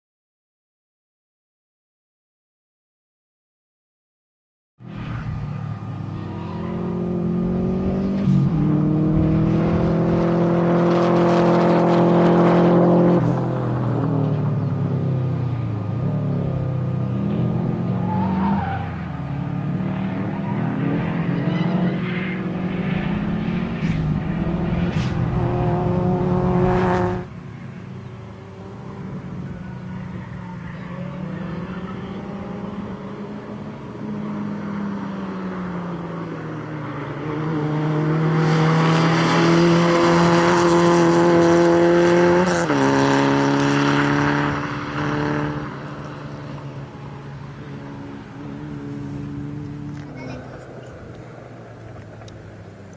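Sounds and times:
car engine revving hard: 6.0 - 13.5, 17.2 - 27.3, 37.1 - 46.8.

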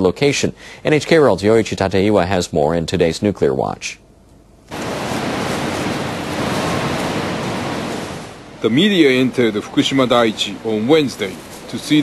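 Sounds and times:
steady rushing noise: 4.7 - 12.0.

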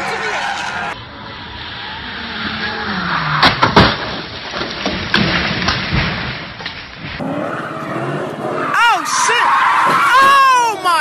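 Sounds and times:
car tyres squealing: 0.0 - 3.8, 7.2 - 11.0
car and street noise: 0.0 - 5.3, 6.4 - 11.0.

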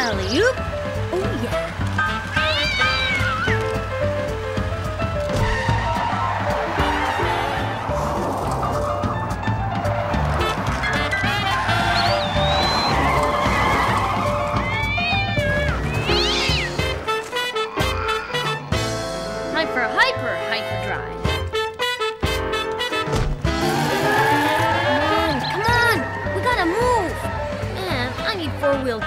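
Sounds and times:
lively cartoon music with beat: 0.0 - 29.0
high gliding animal-like calls: 11.6 - 18.7.

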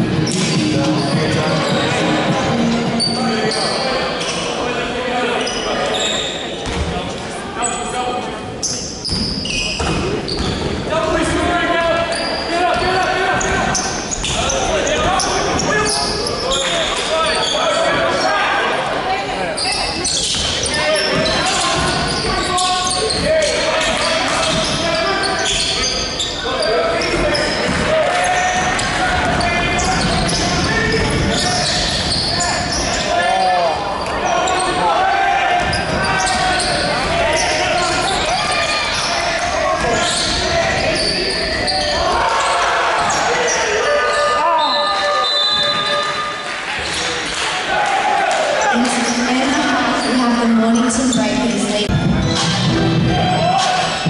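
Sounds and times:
people calling and talking: 0.0 - 54.0.

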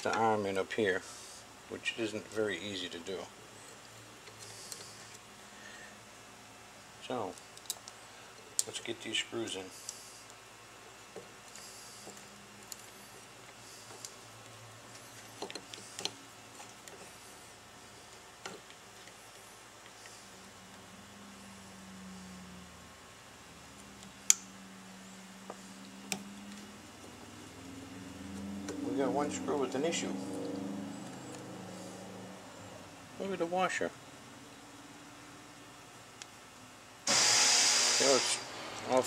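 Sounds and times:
low steady hum: 0.0 - 39.0
screwdriver clicks and taps on metal: 15.4 - 16.2.

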